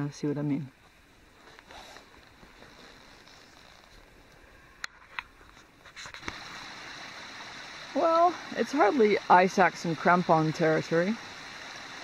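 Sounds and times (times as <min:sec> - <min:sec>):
mountain stream rushing: 0:05.8 - 0:12.0.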